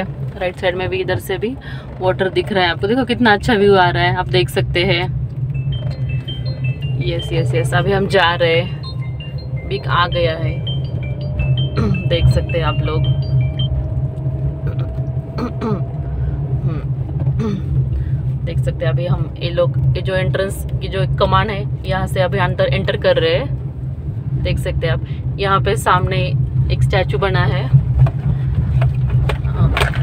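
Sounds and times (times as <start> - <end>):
car engine and tyres rumbling: 0.0 - 30.0
faint high tone: 5.7 - 16.0.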